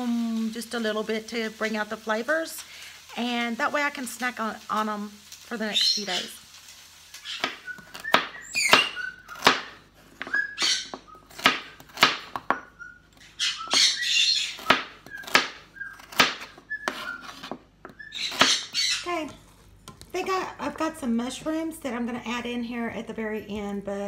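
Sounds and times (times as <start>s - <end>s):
knife chopping on plastic board: 7.4s - 12.7s, 14.6s - 18.6s.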